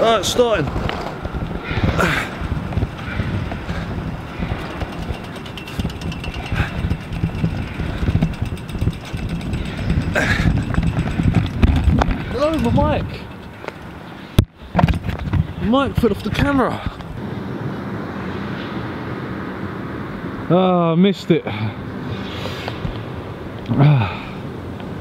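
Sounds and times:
skateboard wheels rolling on pavement: 0:00.0 - 0:17.2
wind on microphone: 0:00.0 - 0:17.2
person speaking: 0:12.2 - 0:13.3.

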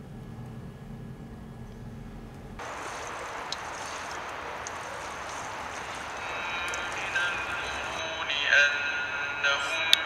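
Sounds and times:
water splashing onto plant: 0:02.6 - 0:08.0
music with singing voice: 0:03.8 - 0:10.0.

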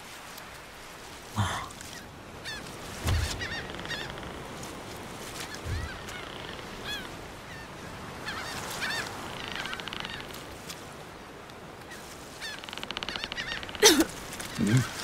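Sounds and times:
seagulls calling: 0:01.9 - 0:10.7, 0:11.8 - 0:15.0.

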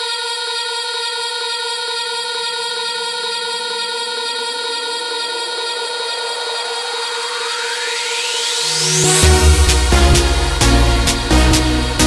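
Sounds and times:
sustained synth pad chord: 0:05.2 - 0:12.0
rising noise sweep: 0:05.4 - 0:12.0.

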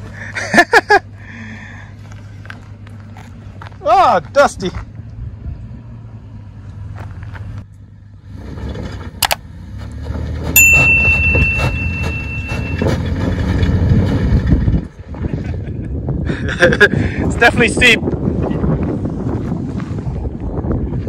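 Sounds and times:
truck engine climbing: 0:00.0 - 0:21.0
thin high steady tone: 0:10.6 - 0:12.9.

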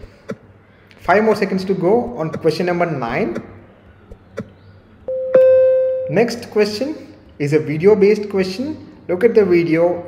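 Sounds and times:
electronic timer beep: 0:05.1 - 0:06.3.

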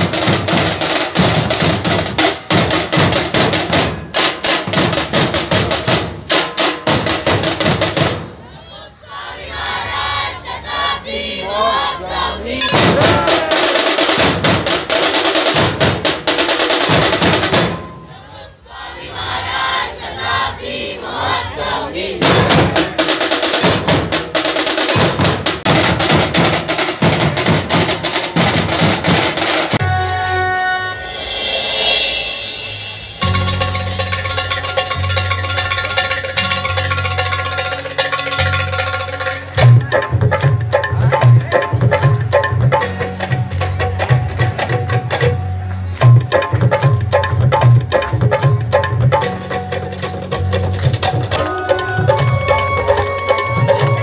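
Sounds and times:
barrel drums beaten with sticks: 0:00.0 - 0:08.4, 0:12.6 - 0:18.2, 0:22.2 - 0:29.9, 0:39.6 - 0:54.0
people shouting: 0:08.4 - 0:14.2, 0:18.0 - 0:23.0, 0:51.4 - 0:54.0.

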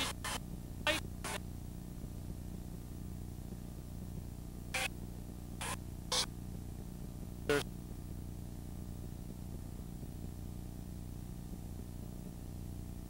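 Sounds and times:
low electrical hum and hiss: 0:00.0 - 0:13.0.

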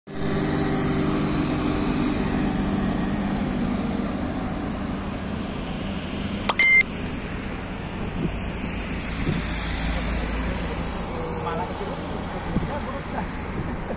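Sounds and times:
street traffic: 0:00.1 - 0:13.9
high-pitched beep: 0:06.5 - 0:06.9.

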